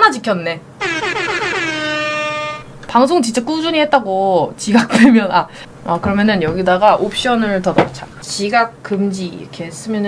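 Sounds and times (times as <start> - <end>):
descending comic horn tone: 0.8 - 6.0.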